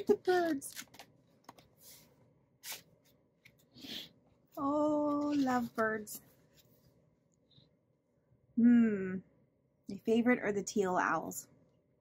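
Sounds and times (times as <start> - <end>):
rustling paper and binder pages: 0.3 - 3.7, 5.0 - 7.0.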